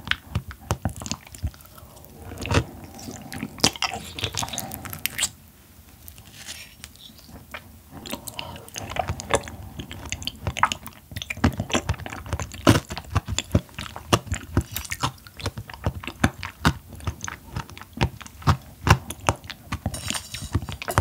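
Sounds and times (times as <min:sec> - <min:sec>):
person chewing: 0:00.0 - 0:05.4, 0:06.0 - 0:21.0
wet clicking mouth sounds: 0:00.0 - 0:05.4, 0:06.8 - 0:19.9.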